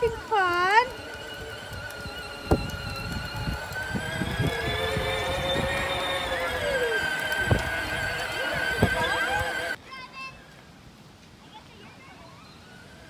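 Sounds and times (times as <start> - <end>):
wheels knocking on lawn: 0.0 - 9.7
electric toy motor whining: 0.0 - 9.8.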